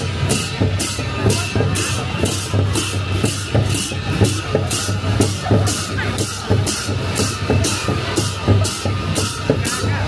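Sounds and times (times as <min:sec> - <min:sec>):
deep drum beat: 0:00.0 - 0:10.0.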